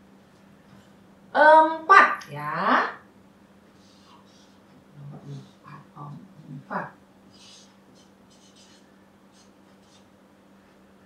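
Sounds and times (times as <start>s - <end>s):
marker writing on paper: 7.3s - 10.1s.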